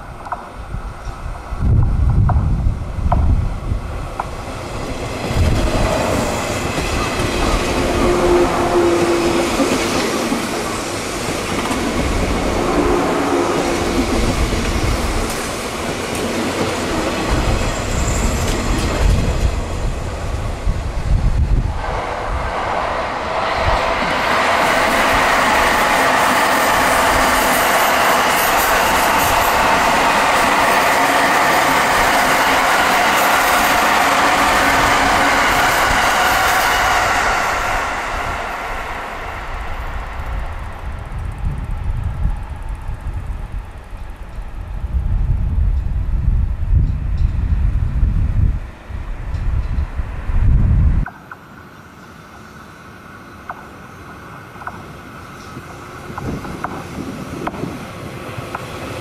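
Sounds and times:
train wheels clickety-clack: 0:00.0 - 0:03.4, 0:04.1 - 0:12.6, 0:13.5 - 0:20.0, 0:21.8 - 0:39.1, 0:53.4 - 0:59.0.

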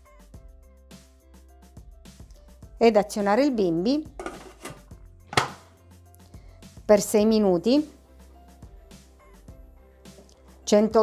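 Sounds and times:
faint background music: 0:00.0 - 0:11.0
plastic lid clicking onto bowl: 0:04.2 - 0:05.6.

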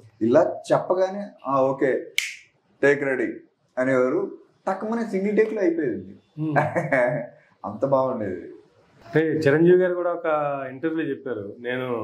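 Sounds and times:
man talking: 0:00.0 - 0:02.2, 0:02.8 - 0:12.0
sharp click with hiss: 0:02.2 - 0:02.4.

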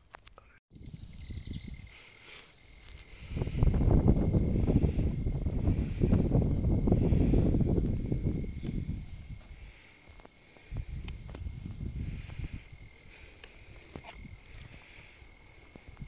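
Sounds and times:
low fluttering microphone rumble: 0:03.1 - 0:09.7.

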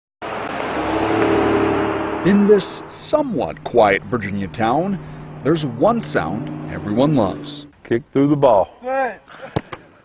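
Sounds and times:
low engine hum: 0:00.2 - 0:07.9
car tyre and engine noise: 0:00.2 - 0:08.3.

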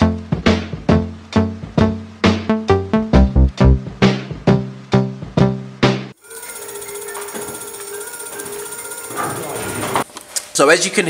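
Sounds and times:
electric scooter motor whine: 0:06.2 - 0:10.1.

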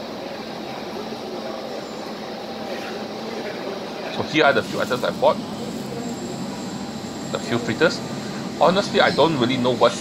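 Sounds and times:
constant hum: 0:00.0 - 0:10.0.

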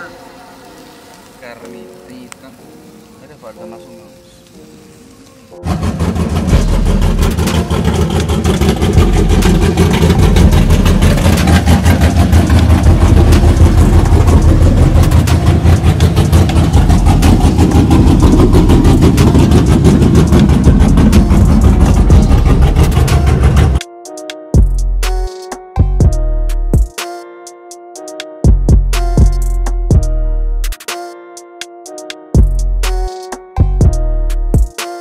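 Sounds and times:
pickup truck engine running: 0:05.6 - 0:23.8.

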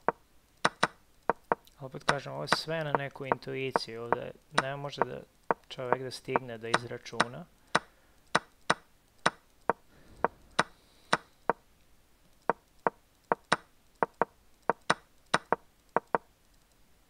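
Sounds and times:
wooden chess piece clacks: 0:00.0 - 0:11.6, 0:12.4 - 0:16.3.

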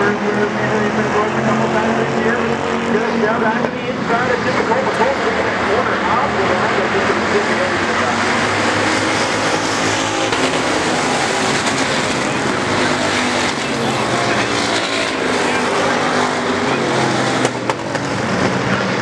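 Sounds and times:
stock car engines racing: 0:00.0 - 0:19.0.

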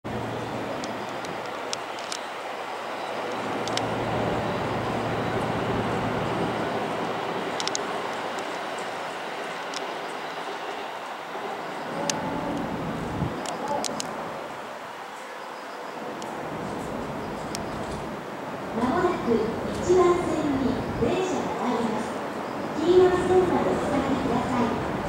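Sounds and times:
electric train equipment humming: 0:00.1 - 0:13.4.

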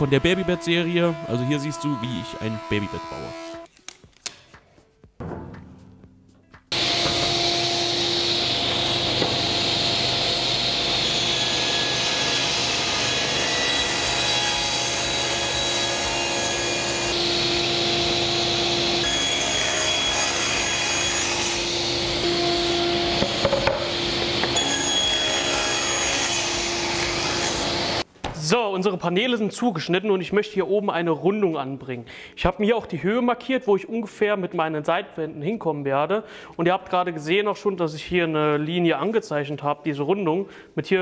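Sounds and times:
table saw cutting wood: 0:00.0 - 0:03.7, 0:06.7 - 0:28.0.

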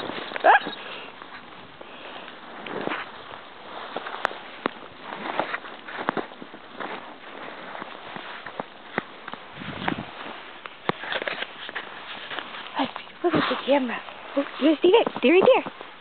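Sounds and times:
footsteps crunching through snow: 0:00.0 - 0:16.0.

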